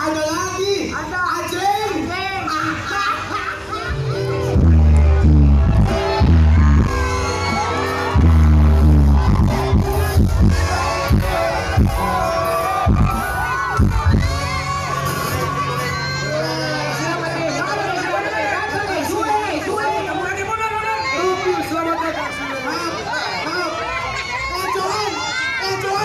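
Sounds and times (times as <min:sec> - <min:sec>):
crowd shouting and cheering: 0:00.0 - 0:26.0
loud live music over speakers: 0:00.0 - 0:26.0.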